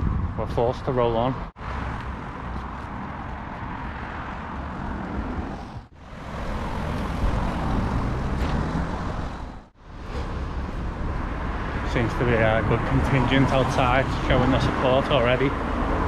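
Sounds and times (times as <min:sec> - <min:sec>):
road traffic going by: 0:00.0 - 0:16.0.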